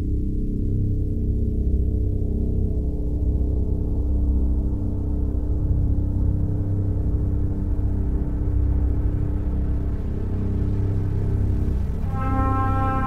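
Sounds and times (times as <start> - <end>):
electronic music drone: 8.1 - 13.0.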